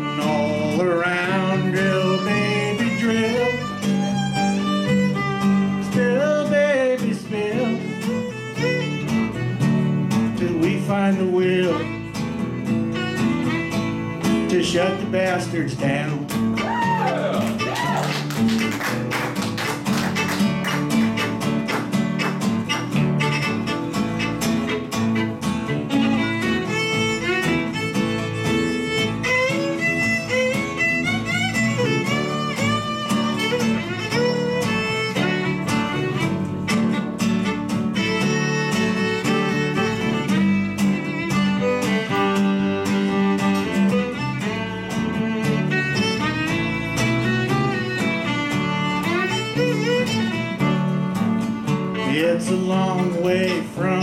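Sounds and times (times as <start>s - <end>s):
acoustic guitar strumming: 0.0s - 54.0s
fiddle melody: 0.0s - 54.0s.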